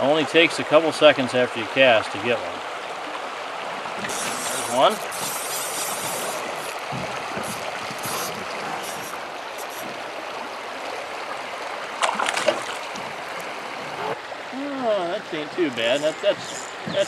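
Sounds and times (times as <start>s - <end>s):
river water rushing over rocks: 2.8s - 17.0s
fish splashing at surface: 12.0s - 13.7s.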